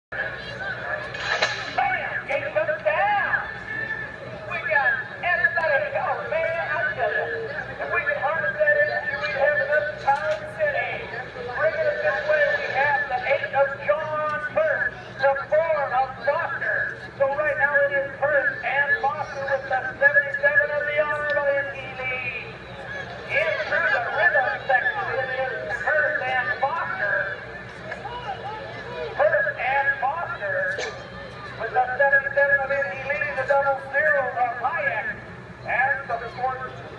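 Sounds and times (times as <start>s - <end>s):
people talking and shouting: 0.1s - 36.9s
man commentating a race: 1.7s - 36.9s.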